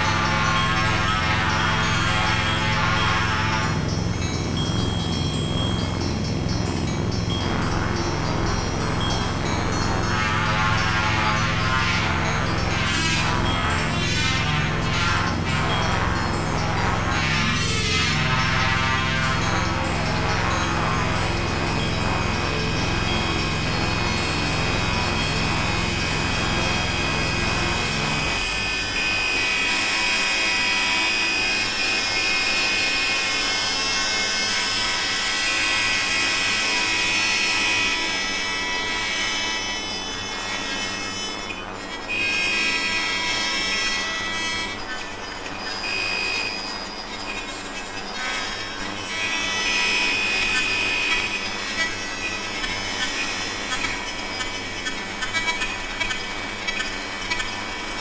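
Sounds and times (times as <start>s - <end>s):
experimental electronic music: 0.0s - 58.0s
crackling clicks: 21.2s - 58.0s.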